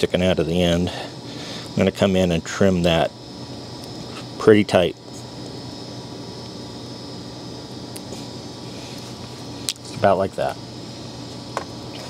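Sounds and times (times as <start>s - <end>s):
fan-like hum: 0.0s - 12.0s.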